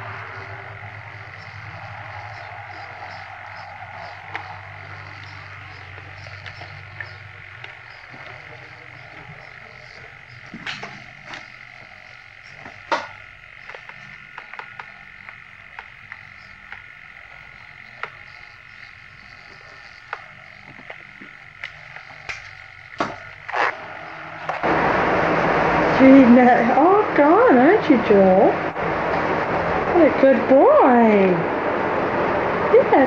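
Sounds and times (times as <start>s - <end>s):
faint hum: 0.0s - 33.0s.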